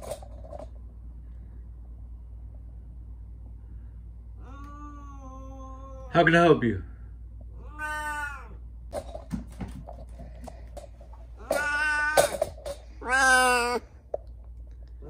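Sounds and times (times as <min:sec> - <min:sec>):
cat meowing: 0:04.4 - 0:06.2, 0:07.5 - 0:08.6, 0:11.4 - 0:13.9.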